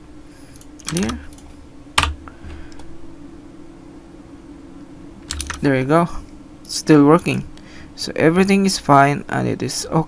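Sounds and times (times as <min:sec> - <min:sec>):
keyboard key clicks: 0:02.0 - 0:02.2, 0:05.3 - 0:05.6.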